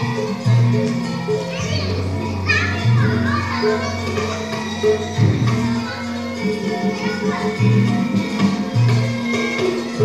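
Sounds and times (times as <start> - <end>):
gamelan music: 0.0 - 10.0
children's voices: 1.4 - 8.3.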